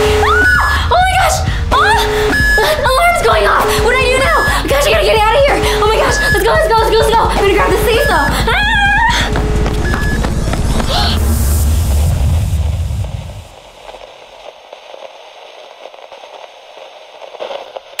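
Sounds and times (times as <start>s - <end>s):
microphone handling rumble: 0.0s - 14.4s
glitch noise burst: 0.0s - 18.0s
crackling static with ticks: 2.6s - 8.5s, 12.3s - 18.0s.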